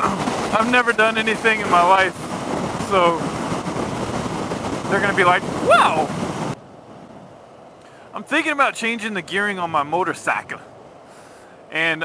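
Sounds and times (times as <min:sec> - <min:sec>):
wind rushing over microphone: 0:00.0 - 0:11.1
low road rumble: 0:00.0 - 0:12.0.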